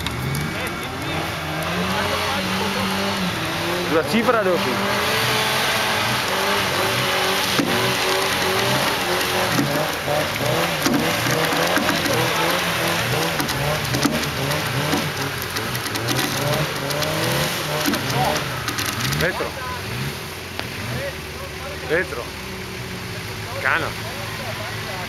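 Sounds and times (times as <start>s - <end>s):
off-road engine revving: 0.0s - 25.0s.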